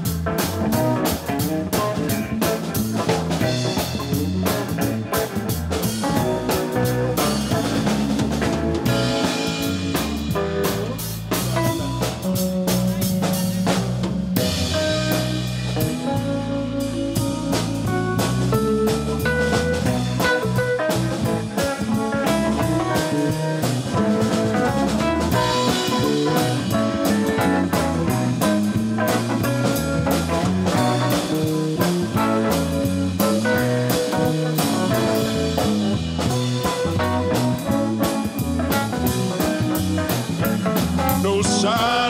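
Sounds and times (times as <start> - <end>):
drum kit hits: 0.0 - 42.0
electric bass line: 0.0 - 42.0
electric guitar: 0.0 - 42.0
electric keyboard: 0.0 - 42.0.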